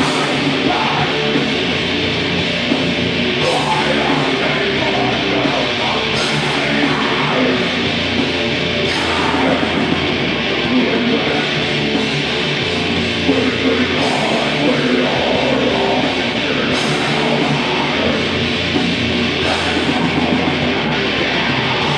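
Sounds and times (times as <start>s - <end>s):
bass guitar: 0.0s - 21.9s
distorted electric guitars: 0.0s - 21.9s
drums: 0.0s - 21.9s.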